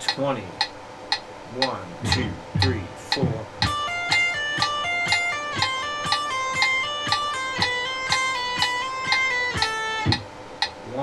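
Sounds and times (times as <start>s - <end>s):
metronome clicking: 0.0s - 10.8s
electric guitar legato run: 2.0s - 11.0s.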